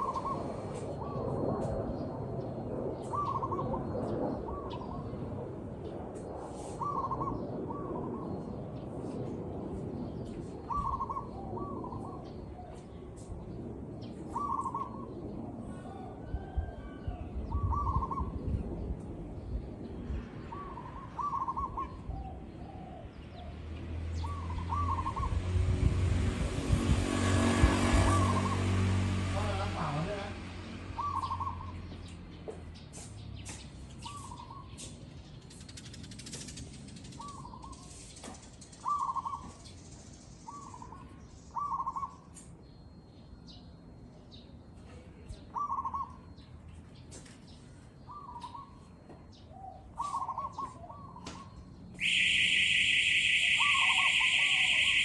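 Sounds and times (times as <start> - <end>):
dove cooing: 0.0 - 1.4, 3.0 - 3.9, 6.8 - 8.2, 10.7 - 12.8, 14.3 - 18.4, 20.5 - 23.1, 24.2 - 25.4, 31.0 - 31.7, 45.5 - 46.3, 49.6 - 55.0.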